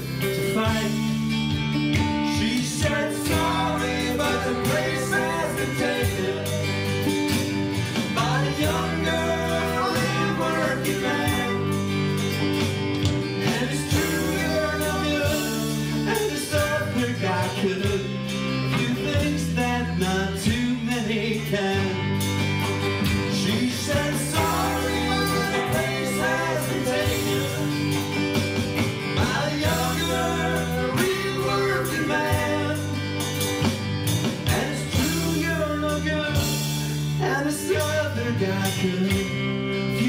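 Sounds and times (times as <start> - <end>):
acoustic and electric guitars: 0.0 - 40.0
bass line: 0.0 - 40.0
keyboard: 0.0 - 40.0.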